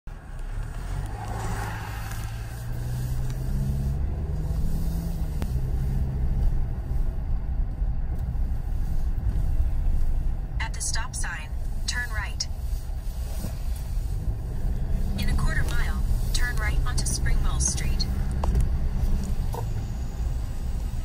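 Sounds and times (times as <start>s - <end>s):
road noise: 0.0s - 21.0s
car engine rumble: 0.1s - 21.0s.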